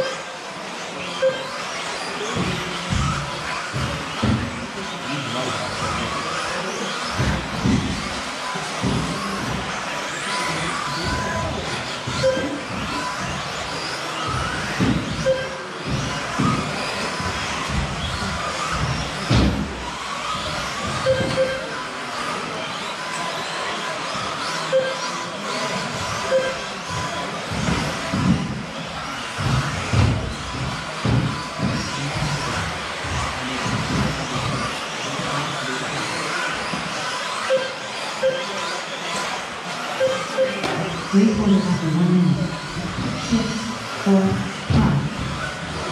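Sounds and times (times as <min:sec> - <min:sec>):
rc cars racing: 0:00.0 - 0:45.9
short electronic beeps: 0:01.2 - 0:01.6, 0:12.2 - 0:12.6, 0:15.2 - 0:15.6, 0:21.0 - 0:21.8, 0:24.7 - 0:25.1, 0:26.3 - 0:26.7, 0:37.4 - 0:38.7, 0:40.0 - 0:40.7.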